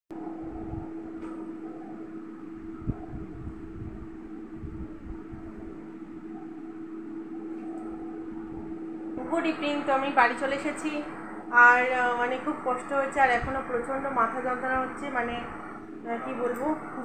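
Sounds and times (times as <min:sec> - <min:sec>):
low rumble: 0:00.1 - 0:17.0
steady hum: 0:00.1 - 0:17.0.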